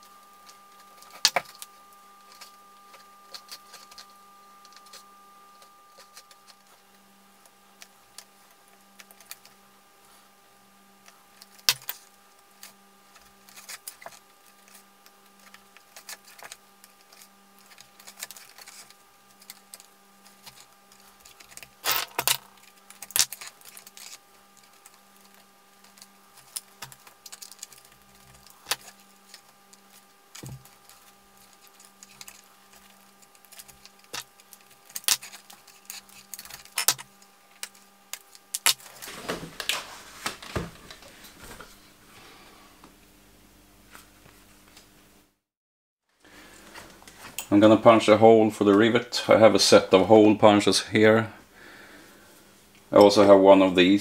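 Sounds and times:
faint steady hum: 0.0s - 45.5s, 46.1s - 54.0s.

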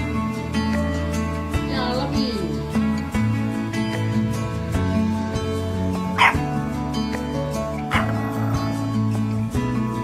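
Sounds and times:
background music with held notes: 0.0s - 10.0s
puppy yipping: 6.2s - 6.4s, 7.8s - 8.8s.

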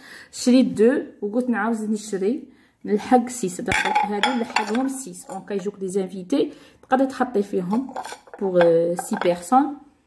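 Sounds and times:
woman talking: 0.0s - 10.0s
dishes clinking: 3.7s - 5.4s.

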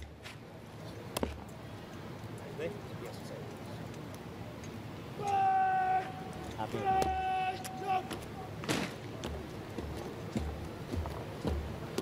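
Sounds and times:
drill command shouted: 5.2s - 8.2s
regular low thuds: 9.1s - 12.0s.

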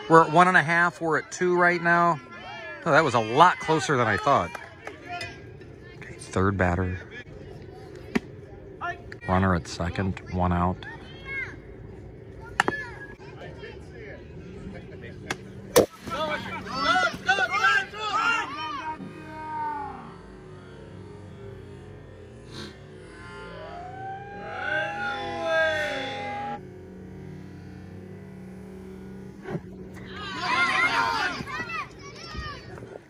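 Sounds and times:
players and spectators shouting: 0.0s - 33.0s
baseball bat cracking ball: 12.5s - 13.0s, 15.2s - 16.3s.

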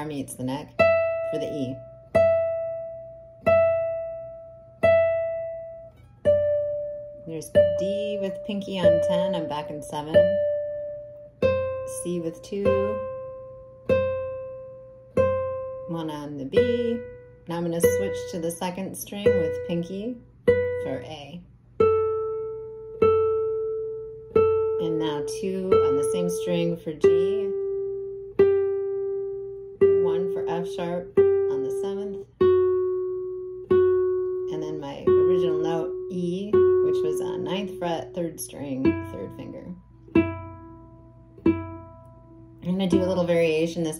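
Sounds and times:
classical guitar notes plucked: 0.0s - 43.9s.

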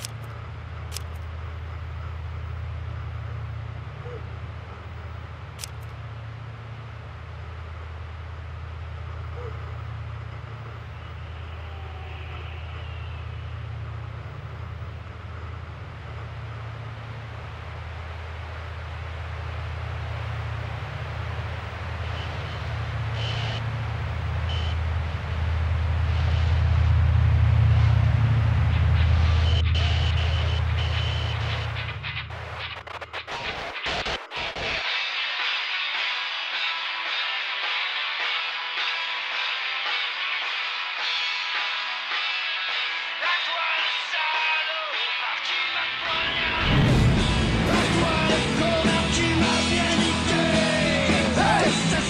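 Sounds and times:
low rumbling drone: 0.1s - 33.0s, 46.0s - 52.0s.

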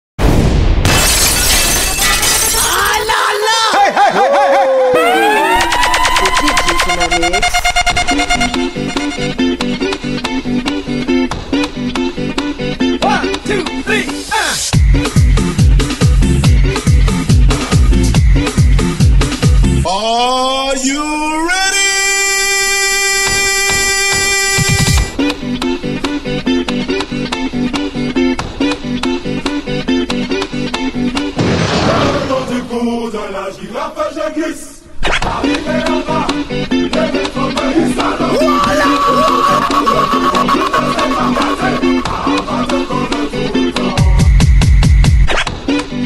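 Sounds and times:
crash with deep boom and shattering: 0.2s - 2.4s, 31.4s - 32.7s
long electronic tone: 5.0s - 9.7s, 23.5s - 25.2s.

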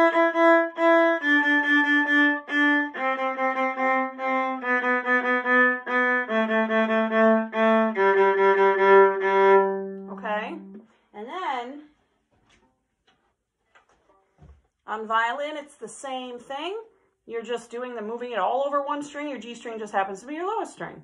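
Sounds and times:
violin playing a descending scale: 0.0s - 10.8s.

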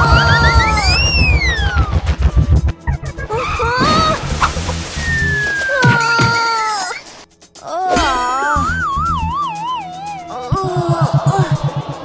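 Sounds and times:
long rising and falling whistle: 0.0s - 2.5s, 5.0s - 5.8s
fast pulsing low rumble: 0.0s - 5.6s
short rising chirps: 0.0s - 5.8s.

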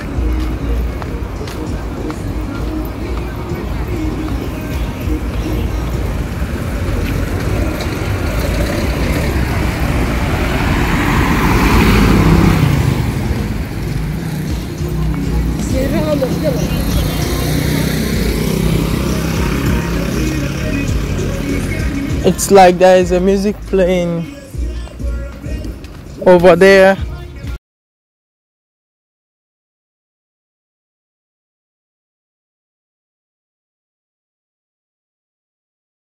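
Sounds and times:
distant music: 0.0s - 27.5s
street hum: 0.0s - 27.6s
vehicle passing by: 1.2s - 25.6s.

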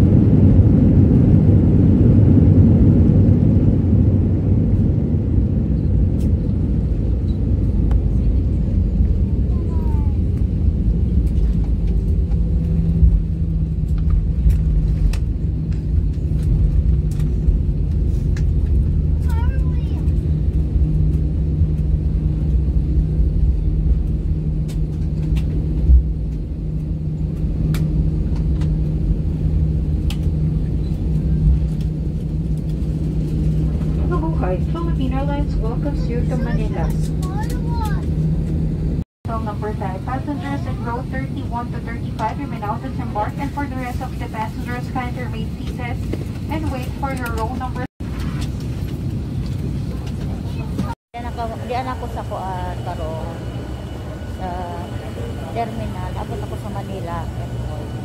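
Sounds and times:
jet engines and wheels rumbling: 0.0s - 58.0s
low hum: 0.0s - 58.0s.

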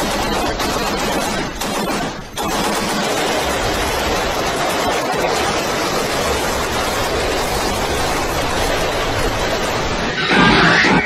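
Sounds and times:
large flames rushing: 2.3s - 11.0s.

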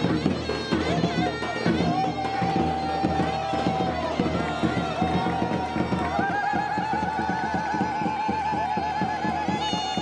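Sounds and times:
fast drum beat: 0.0s - 10.0s.

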